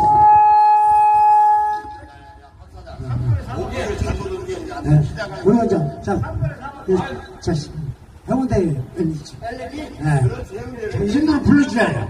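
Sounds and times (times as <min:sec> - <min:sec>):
reedy wind instrument note: 0:00.0 - 0:02.4.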